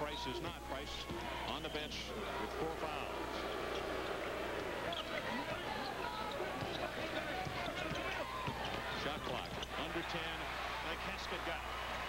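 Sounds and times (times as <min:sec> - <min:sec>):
crowd voices hum: 0:00.0 - 0:12.0
basketball bouncing on hardwood: 0:06.5 - 0:09.7.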